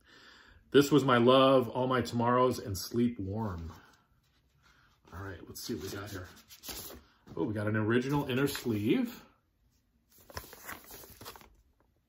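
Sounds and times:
paper sleeve rustling: 4.2 - 7.3, 10.1 - 11.9.

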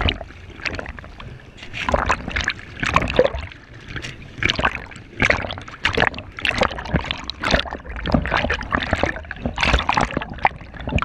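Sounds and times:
water splashing and sloshing: 0.0 - 11.0.

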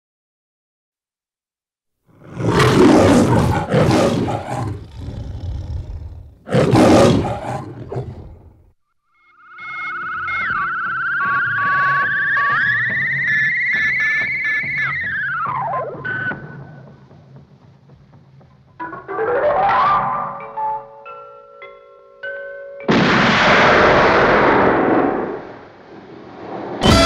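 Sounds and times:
lion roaring: 2.1 - 8.7.

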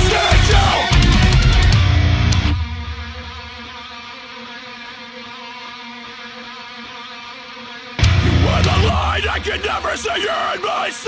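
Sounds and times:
electric guitar chord ringing: 0.0 - 6.2, 8.0 - 9.7
heavy metal music: 0.0 - 11.0.

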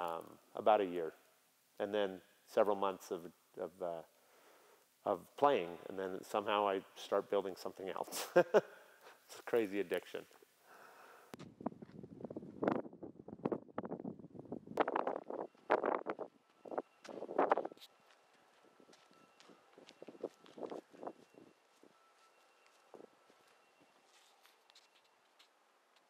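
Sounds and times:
wind on microphone: 11.4 - 17.8
footsteps on pavement: 16.5 - 26.0.

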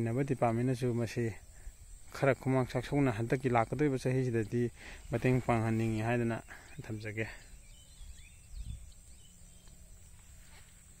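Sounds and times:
faint chirps and ticks: 0.0 - 11.0
steady high hiss: 0.0 - 11.0
wind rumble on microphone: 7.4 - 10.0.

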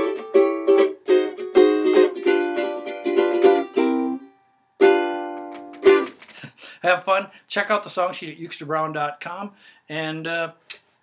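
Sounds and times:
ukulele strumming: 0.0 - 6.4.

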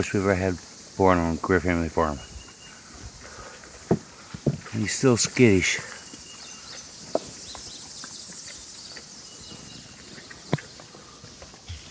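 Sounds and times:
small hooves stepping on straw: 1.7 - 11.9.

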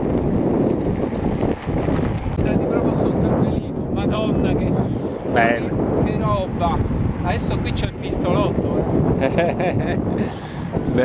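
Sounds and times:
bike tyres rumbling on gravel: 0.0 - 11.0
wind buffeting microphone: 0.0 - 11.0
voices: 2.4 - 9.0.

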